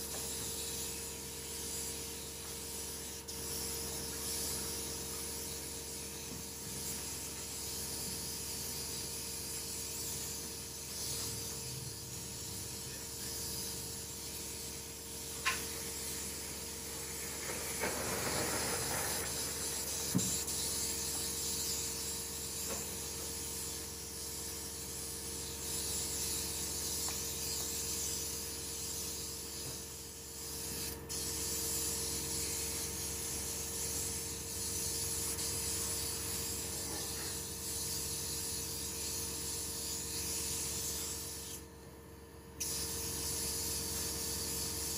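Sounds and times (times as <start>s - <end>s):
steady hiss: 12.4s - 23.5s.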